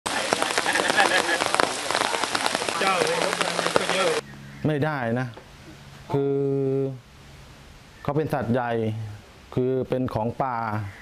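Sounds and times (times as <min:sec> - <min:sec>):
steady rain falling: 0:00.0 - 0:04.2.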